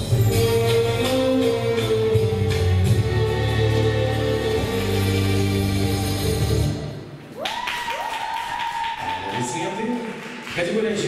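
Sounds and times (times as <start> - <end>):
audience clapping: 7.2 - 11.0.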